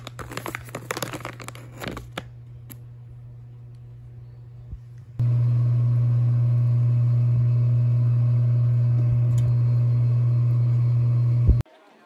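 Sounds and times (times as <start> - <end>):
loud electrical hum: 0.0 - 11.6.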